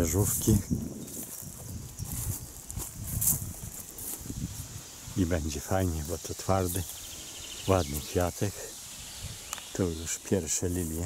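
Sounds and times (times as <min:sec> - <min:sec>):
plants rustling: 0:00.0 - 0:08.6, 0:09.5 - 0:11.0
footsteps on grass: 0:00.0 - 0:11.0.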